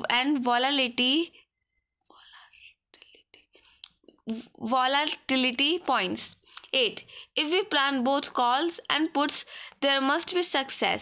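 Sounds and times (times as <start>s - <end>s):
faint breathy whisper: 2.0s - 3.8s.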